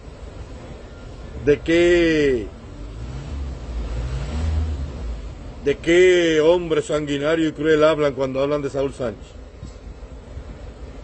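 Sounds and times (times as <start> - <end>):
vehicle engine rumble: 0.0 - 11.0.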